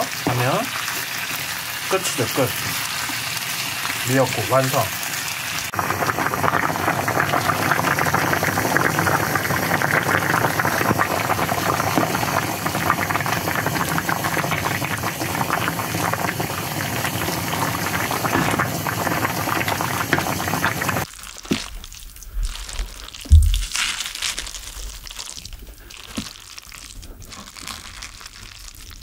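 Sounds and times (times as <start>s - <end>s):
soup boiling with bubbles popping: 0.0s - 29.0s.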